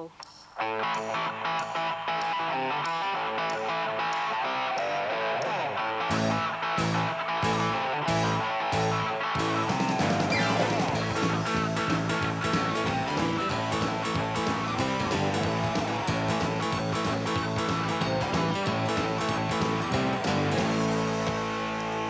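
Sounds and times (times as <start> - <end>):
electric guitar riff: 0.6 - 22.0
bass and drums: 6.1 - 22.0.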